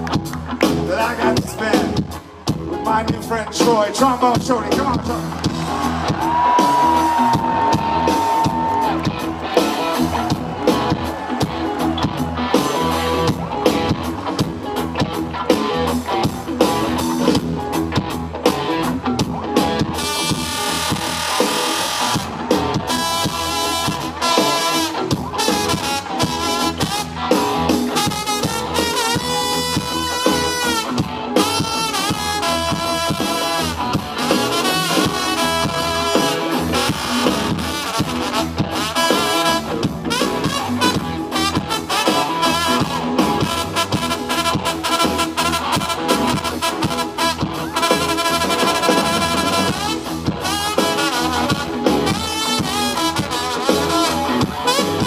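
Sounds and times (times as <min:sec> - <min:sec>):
live rock band: 0:00.0 - 0:55.0
trombone soloing: 0:19.9 - 0:55.0.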